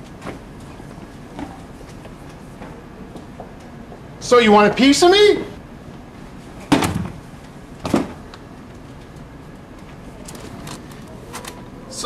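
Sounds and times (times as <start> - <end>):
body thumping on hard floor: 7.8 - 8.2.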